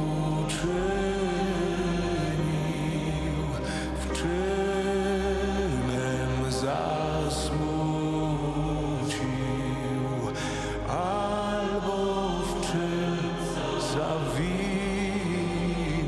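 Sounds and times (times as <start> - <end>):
choir singing a hymn: 0.0 - 16.0
low sustained accompaniment: 0.0 - 16.0.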